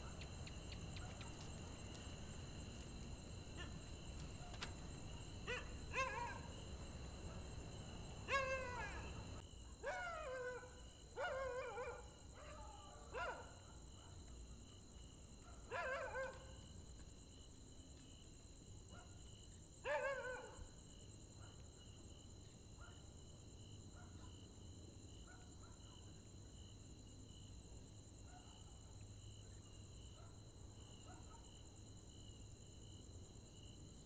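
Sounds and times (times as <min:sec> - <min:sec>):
dog barking: 0:00.0 - 0:14.2, 0:15.5 - 0:16.6, 0:19.8 - 0:20.7, 0:23.9 - 0:24.5, 0:25.2 - 0:26.0, 0:28.2 - 0:28.8, 0:31.0 - 0:31.6
night insects droning: 0:00.0 - 0:34.0.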